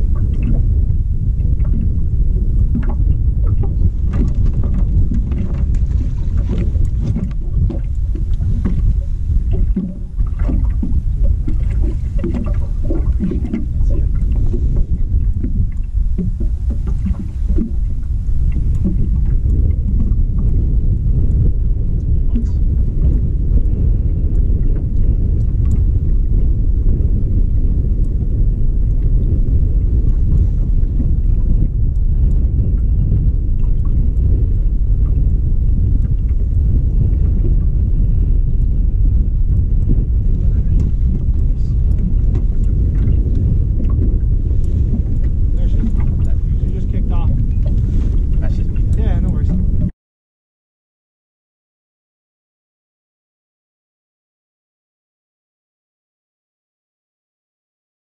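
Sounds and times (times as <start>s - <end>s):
water slapping against boat hull: 0.0s - 26.5s, 29.0s - 34.4s, 39.5s - 49.9s
wind rumbling on microphone: 0.0s - 49.9s
knocks and splashes: 2.6s - 20.1s, 40.5s - 49.9s.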